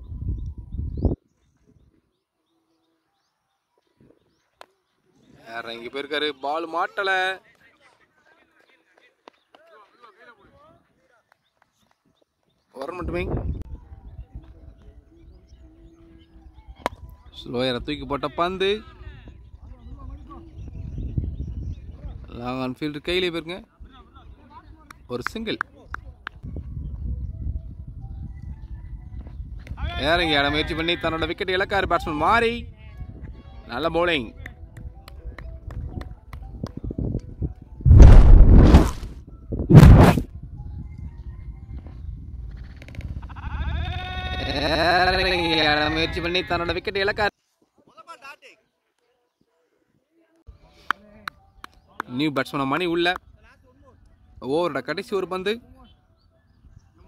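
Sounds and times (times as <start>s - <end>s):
faint outdoor background: 0.0s - 57.0s
rushing noise bursts: 37.9s - 39.0s.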